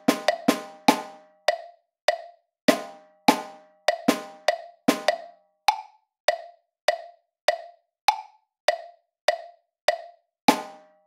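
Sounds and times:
synthesised drum strokes: 0.0 - 1.2
wood-block metronome clicks: 0.0 - 11.0.

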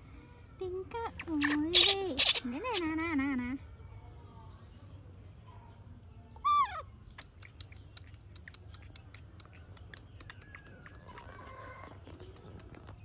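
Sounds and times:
wet sucking clicks: 1.2 - 2.9, 7.1 - 13.0
baby monkey call falling in pitch: 1.4 - 2.9.

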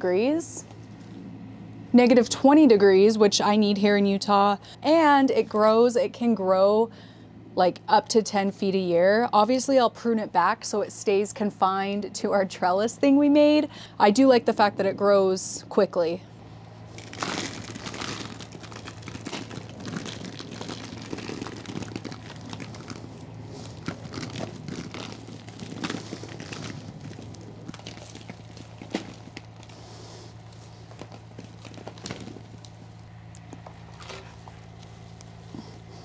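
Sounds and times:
steady low hum: 0.0 - 36.0
roots and soil crackling: 16.8 - 36.0.

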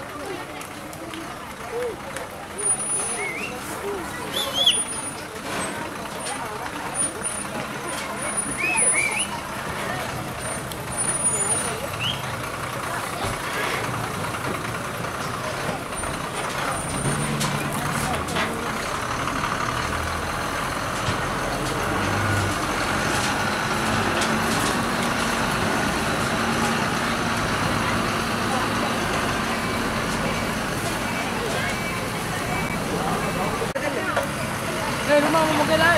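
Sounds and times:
people talking: 0.0 - 35.9
truck diesel engine running: 0.0 - 35.9.

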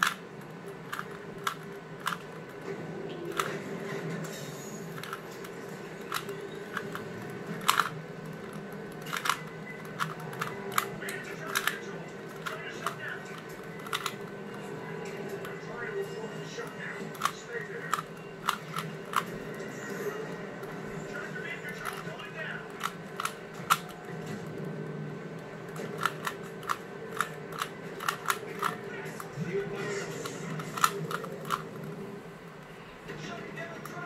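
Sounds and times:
plastic puzzle cube clicks: 0.0 - 2.6, 3.2 - 3.6, 4.9 - 14.7, 16.6 - 19.3, 21.6 - 24.1, 25.6 - 31.9
steady low hum: 0.0 - 34.0.

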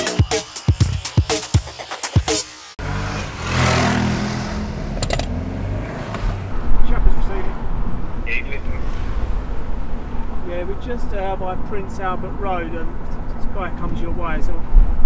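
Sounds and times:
electronic music with a beat: 0.0 - 2.7
vehicle engine driving off: 2.8 - 13.3
car engine and road rumble: 2.8 - 15.0.

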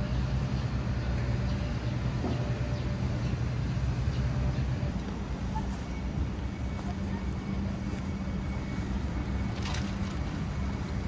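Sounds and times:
city street traffic rumble: 0.0 - 11.0
constant low hum: 0.0 - 11.0.

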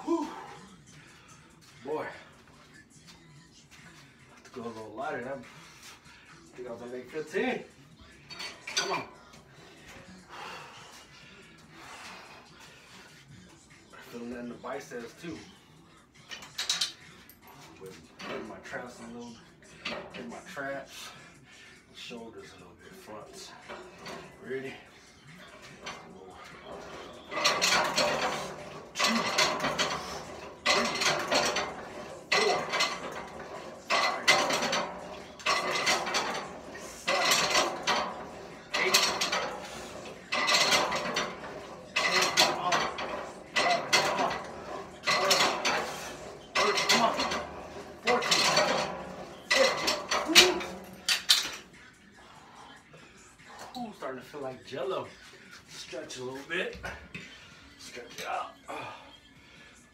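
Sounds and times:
metal chain and handles clinking: 23.3 - 51.8.

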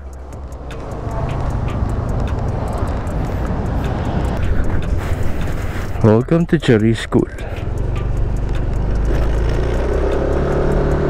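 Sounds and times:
scooter engine running: 0.0 - 11.0
wind noise on microphone: 0.4 - 6.6.

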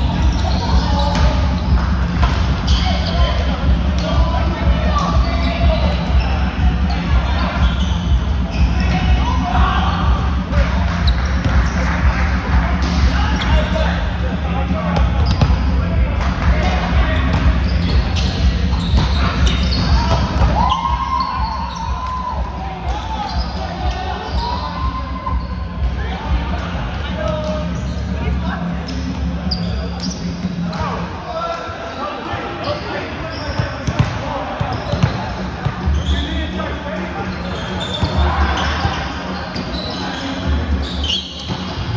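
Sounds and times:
players chattering: 0.0 - 41.9.

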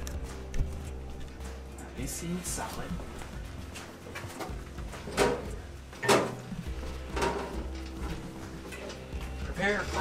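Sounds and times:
footsteps on metal ladder: 3.0 - 9.5.

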